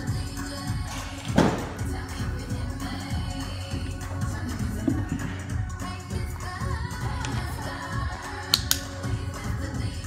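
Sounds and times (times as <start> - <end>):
pop music: 0.0 - 10.0
sharp clicks: 8.5 - 8.9.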